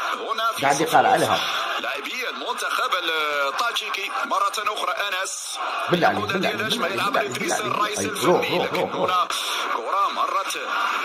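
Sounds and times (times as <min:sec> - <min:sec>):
man talking on broadcast: 0:00.6 - 0:01.6, 0:05.9 - 0:09.3.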